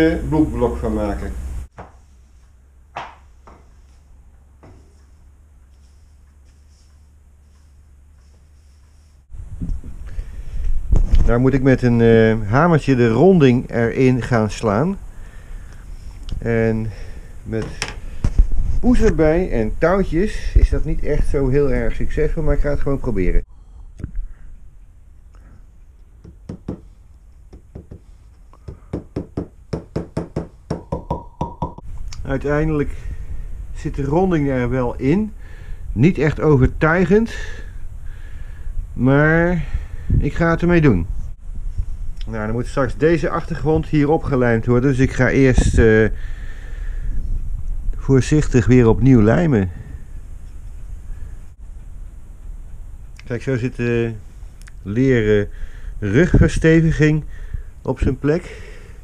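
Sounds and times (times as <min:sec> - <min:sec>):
broom sweeping paper: 0:04.8 - 0:09.3.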